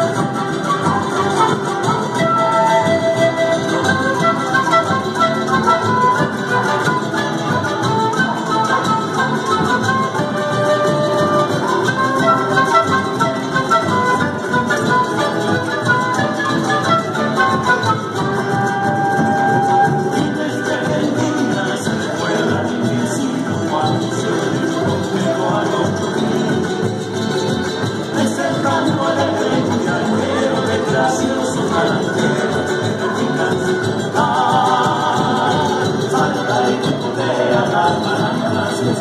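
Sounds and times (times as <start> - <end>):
flute melody: 0.0 - 22.8
harp: 0.0 - 39.0.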